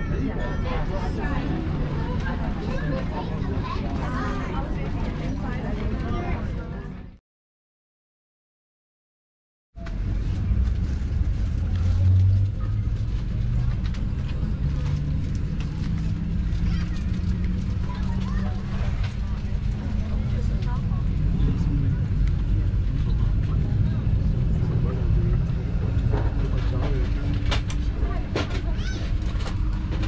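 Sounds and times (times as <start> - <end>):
passengers talking: 0.0 - 7.2, 9.8 - 30.0
airliner cabin rumble: 9.8 - 30.0.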